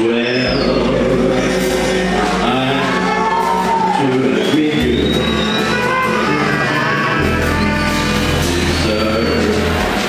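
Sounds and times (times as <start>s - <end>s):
person singing: 0.0s - 7.7s
acoustic guitars: 0.0s - 10.0s
upright double bass: 0.0s - 10.0s
clarinet melody: 0.1s - 9.6s.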